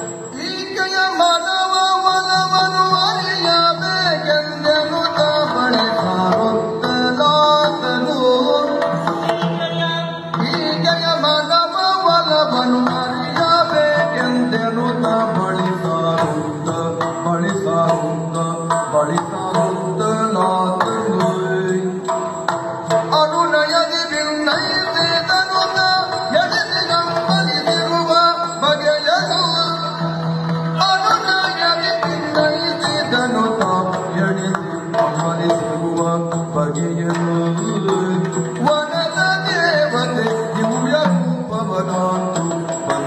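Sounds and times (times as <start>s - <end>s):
person singing: 0.0s - 22.2s.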